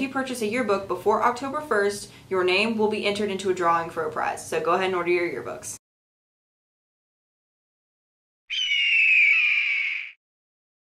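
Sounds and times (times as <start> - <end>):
bird of prey screech: 8.5 - 10.2.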